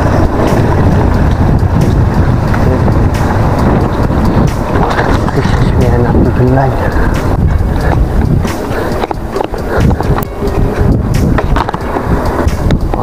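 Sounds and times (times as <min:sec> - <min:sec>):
bike clicks and rattles: 0:00.0 - 0:13.0
bike tyres rumbling on pavement: 0:00.0 - 0:13.0.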